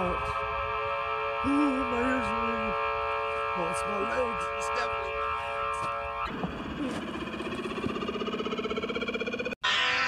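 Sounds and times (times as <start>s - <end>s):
held drone chord: 0.0s - 8.6s, 9.4s - 10.0s
pulsing synthesizer tone rising: 0.0s - 10.0s.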